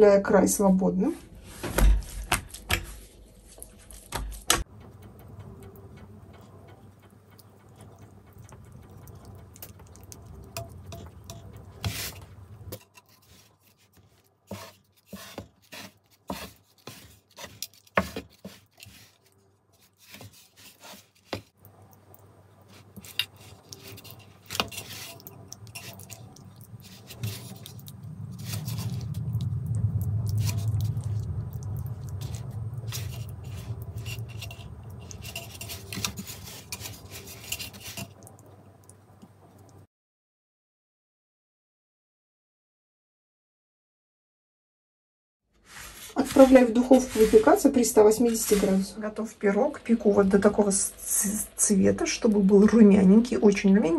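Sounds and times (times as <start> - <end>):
low hum: 1.2 - 12.8, 25.1 - 37.4
hands working dough on metal tray: 6.4 - 21.6, 22.6 - 29.5, 30.2 - 38.4, 45.6 - 49.2.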